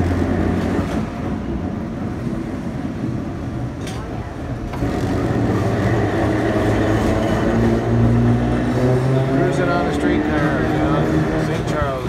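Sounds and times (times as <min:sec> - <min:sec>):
vehicle engine and road drone: 0:00.0 - 0:12.0.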